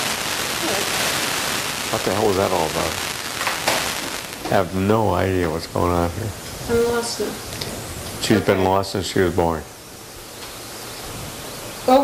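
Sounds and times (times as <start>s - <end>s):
steady hiss: 0.0s - 12.0s
man's voice: 1.9s - 3.0s, 4.5s - 6.4s, 8.2s - 9.7s.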